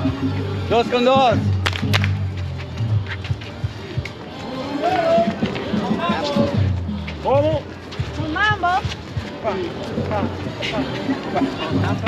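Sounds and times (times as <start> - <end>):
salsa music: 0.0 - 12.0
voices calling out: 3.1 - 12.0.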